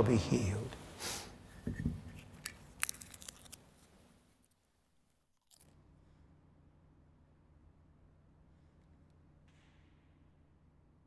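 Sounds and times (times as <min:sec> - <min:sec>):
wafer crunching while chewed: 0:02.2 - 0:04.5, 0:05.4 - 0:05.8.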